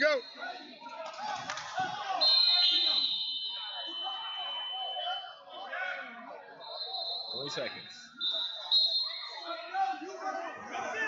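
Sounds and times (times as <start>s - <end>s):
crowd chatter: 0.0s - 11.0s
referee whistles blowing: 1.9s - 5.5s, 6.6s - 9.7s.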